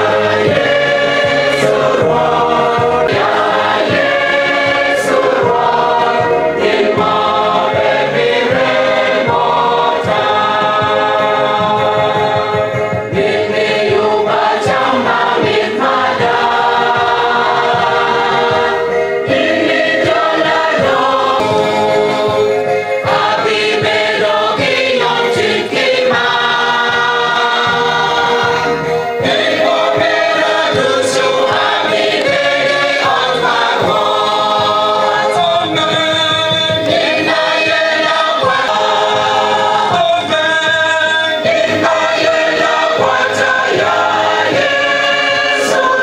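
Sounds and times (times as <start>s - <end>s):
choir singing gospel music: 0.0s - 46.0s.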